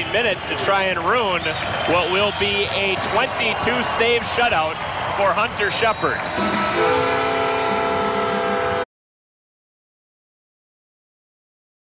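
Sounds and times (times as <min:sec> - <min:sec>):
crowd noise: 0:00.0 - 0:08.8
arena horn held chord: 0:06.4 - 0:08.9.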